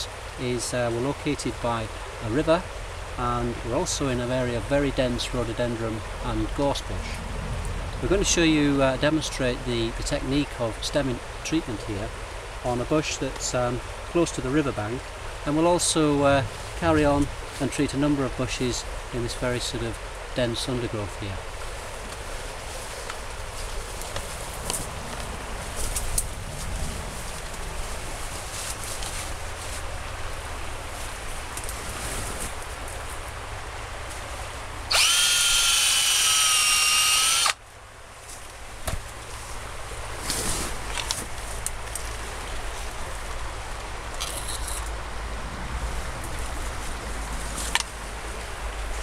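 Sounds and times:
river rushing: 0.0 - 49.0
power drill whining: 34.9 - 37.6.

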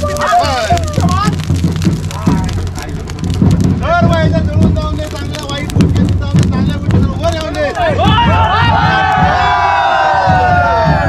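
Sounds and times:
men shouting and calling out: 0.0 - 11.0.

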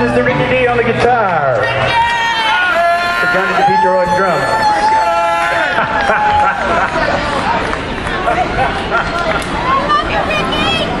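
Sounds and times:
crowd noise: 0.0 - 11.0
people cheering with whoops: 1.9 - 9.4.

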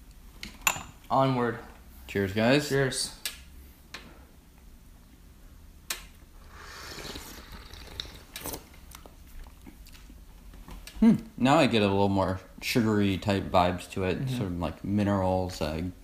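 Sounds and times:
slurping tea: 6.4 - 8.7.

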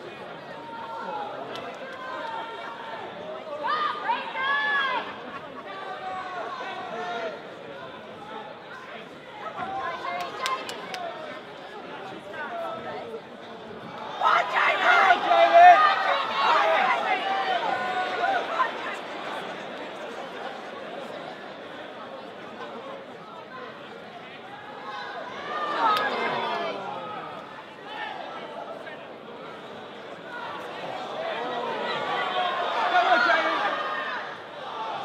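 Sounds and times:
crowd shouting: 13.9 - 20.6, 24.4 - 28.8, 30.2 - 35.0.

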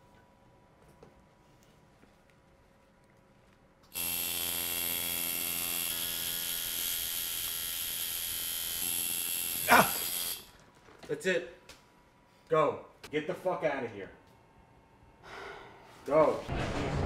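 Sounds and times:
tattoo machine buzzing: 3.9 - 10.6
person yelping: 9.7 - 10.0.

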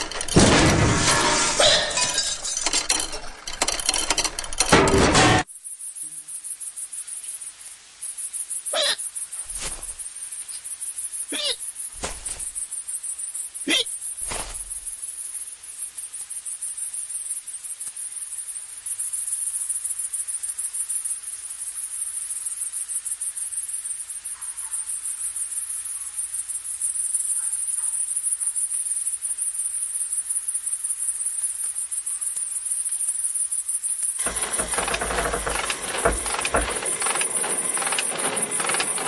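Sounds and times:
insects chirring: 0.0 - 39.0.

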